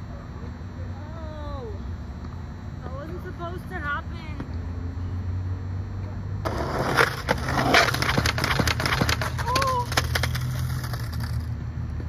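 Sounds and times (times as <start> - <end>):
skateboard wheels rolling on asphalt: 6.4 - 12.0
skateboard clacking on curb: 6.5 - 11.5.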